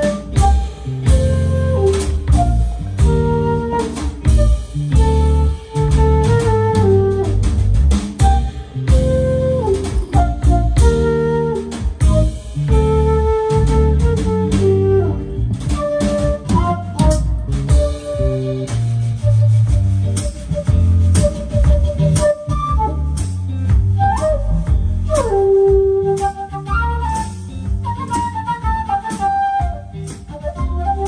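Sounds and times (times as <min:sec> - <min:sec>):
bass: 0:00.0 - 0:31.0
drums: 0:00.0 - 0:31.0
flute melody: 0:00.0 - 0:31.0.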